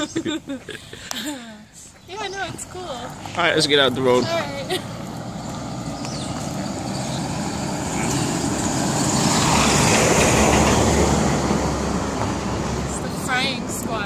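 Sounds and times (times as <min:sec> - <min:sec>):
vehicle driving past: 0:02.6 - 0:13.7.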